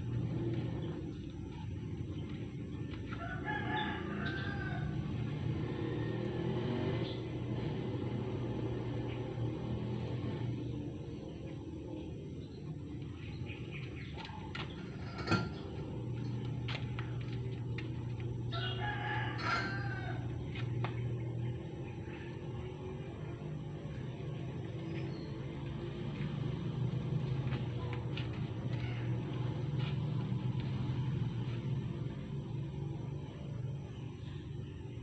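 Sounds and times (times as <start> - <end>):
steady low hum: 0.0 - 35.0
rooster crowing: 3.0 - 6.7, 18.4 - 20.5.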